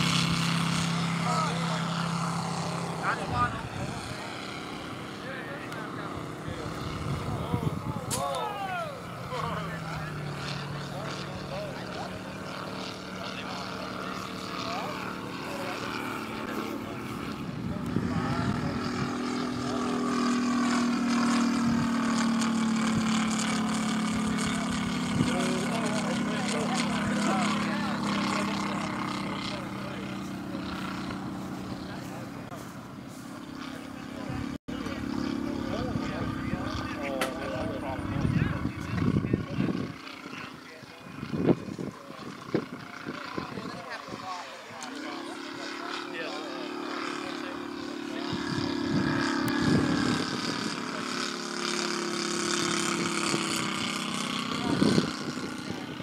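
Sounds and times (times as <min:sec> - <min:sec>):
aircraft radial engine flying by: 0:00.0 - 0:56.0.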